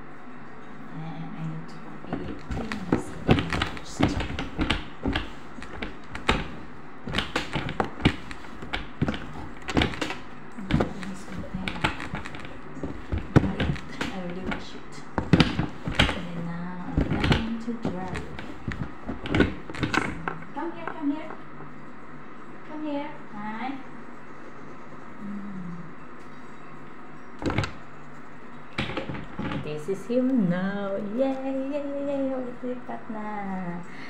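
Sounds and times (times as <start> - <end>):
plastic box knocks and taps: 2.1 - 16.3.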